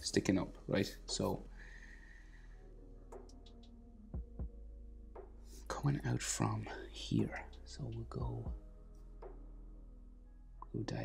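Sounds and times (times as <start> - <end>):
soft low thumps: 4.1 - 5.4, 6.8 - 9.4.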